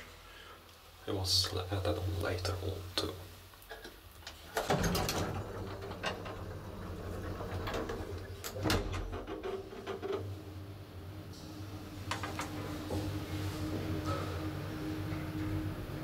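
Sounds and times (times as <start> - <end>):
elevator humming and rattling: 4.3 - 16.0
elevator clunk: 4.6 - 16.0.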